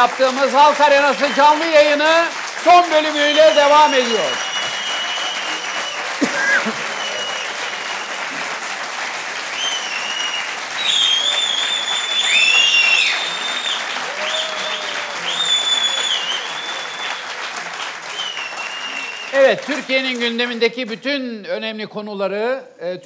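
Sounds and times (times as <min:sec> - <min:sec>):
audience applauding: 0:00.0 - 0:21.1
high whistling: 0:03.1 - 0:08.3, 0:09.5 - 0:17.4, 0:18.1 - 0:19.5.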